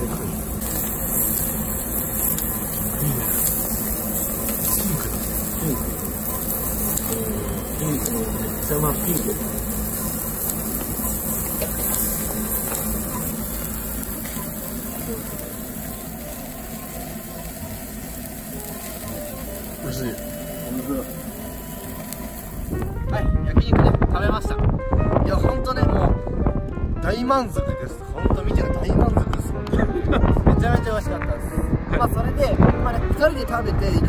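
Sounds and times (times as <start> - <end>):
beef sizzling on grill: 0.0 - 23.2
gas burner flames hissing: 0.0 - 26.1, 27.0 - 34.0.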